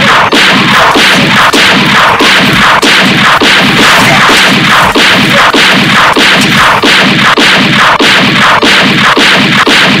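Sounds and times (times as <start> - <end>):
rapid gunfire: 0.0 - 10.0.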